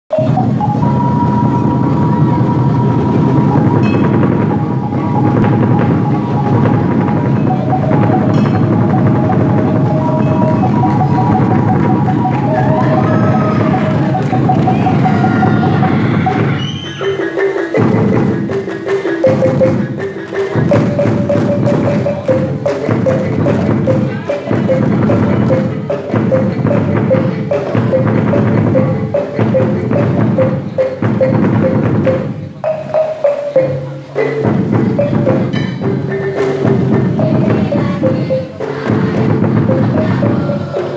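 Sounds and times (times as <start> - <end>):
pipe melody of held notes: 0.1 - 40.9
rhythmic hand drumming: 0.1 - 40.9.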